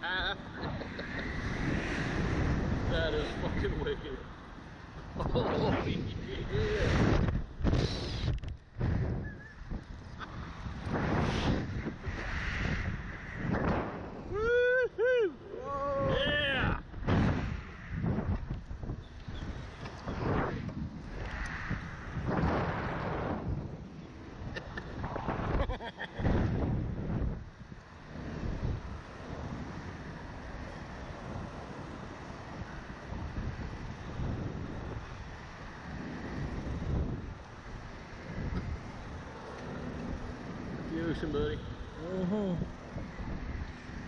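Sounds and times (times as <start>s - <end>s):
wind rushing over microphone: 0.0s - 44.0s.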